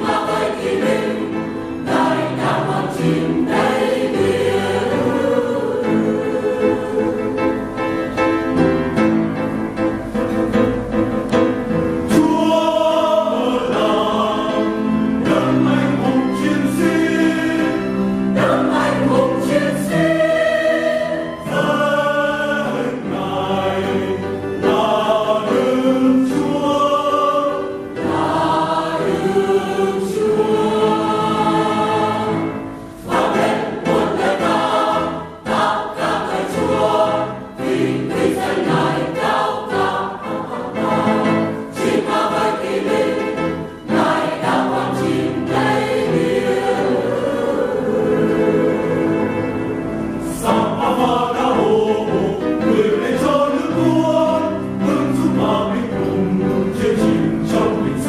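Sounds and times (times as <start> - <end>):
church choir singing a hymn: 0.0 - 10.7, 11.3 - 58.0.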